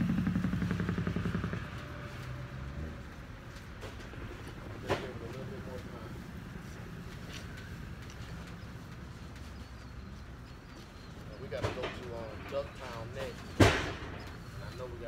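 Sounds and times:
loud metallic bang: 0:13.6 - 0:14.3.

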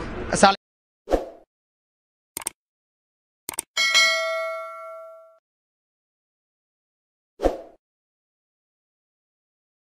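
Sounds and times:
mouse click: 0:02.4 - 0:02.6
notification bell chime: 0:03.8 - 0:05.4.

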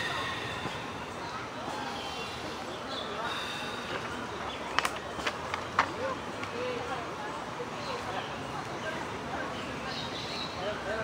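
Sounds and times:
indistinct voices outdoors: 0:00.0 - 0:11.0.

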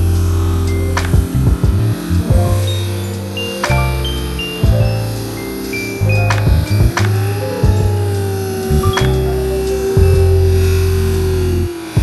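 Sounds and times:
deep held bass line: 0:00.0 - 0:11.8
drum hits: 0:01.0 - 0:02.7, 0:04.6 - 0:05.0, 0:06.3 - 0:08.1.

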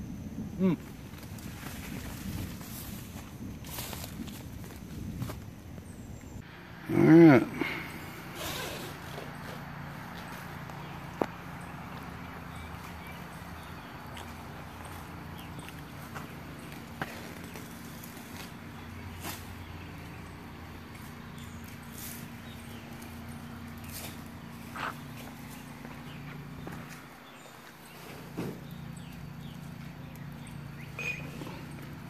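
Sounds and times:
steady low hum: 0:00.0 - 0:32.0
footsteps on hard path: 0:09.2 - 0:19.7, 0:23.8 - 0:29.2.

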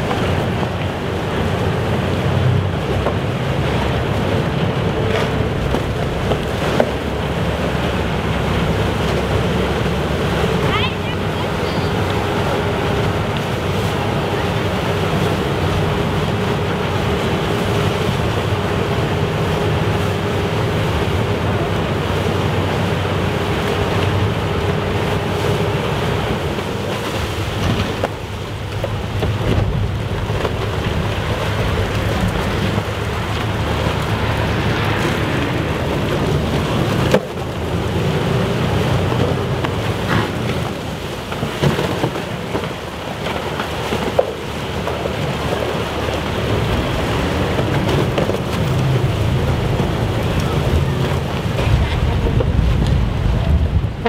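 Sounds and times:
churning water: 0:00.0 - 0:54.0
ship engine hum: 0:00.0 - 0:54.0.

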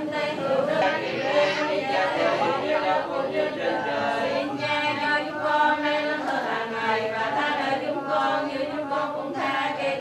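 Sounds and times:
many voices chanting prayers: 0:00.0 - 0:10.0.

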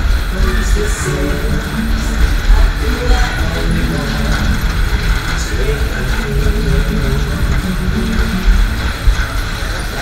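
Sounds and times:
fairground ride music: 0:00.0 - 0:10.0
low rumble of ride running: 0:00.0 - 0:10.0.

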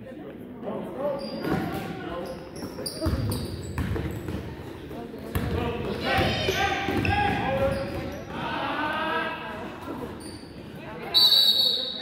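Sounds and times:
referee's whistle blast: 0:11.1 - 0:12.0.

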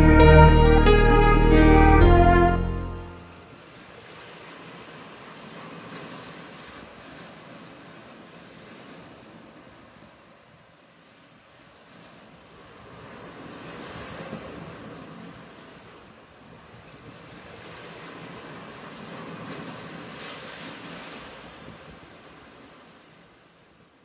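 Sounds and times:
ocean waves washing in: 0:00.0 - 0:24.0.

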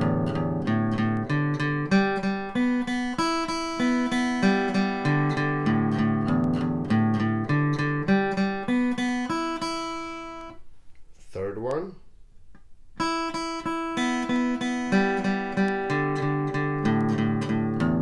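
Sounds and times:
acoustic guitar flatpicking: 0:00.0 - 0:10.7, 0:12.4 - 0:18.0.

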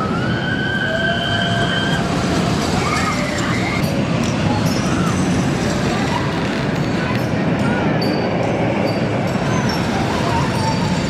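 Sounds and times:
roller coaster rumbling on track: 0:00.0 - 0:11.0.

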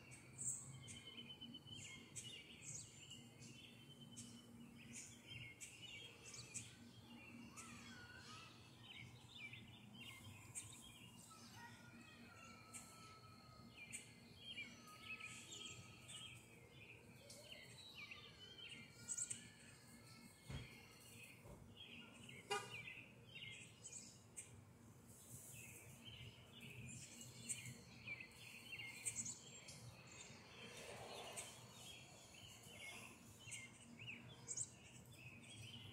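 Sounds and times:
small birds chirping: 0:00.0 - 0:11.8, 0:13.8 - 0:35.9.

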